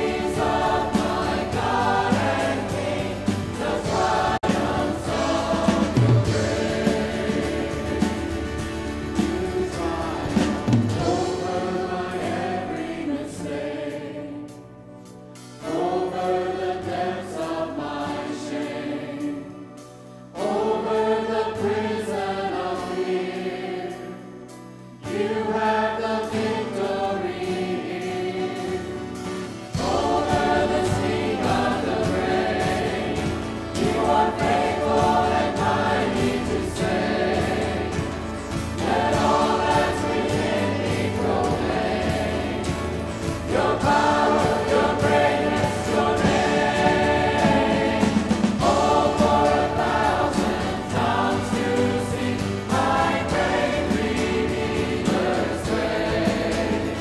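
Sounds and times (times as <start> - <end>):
choir singing with band: 0.0 - 57.0.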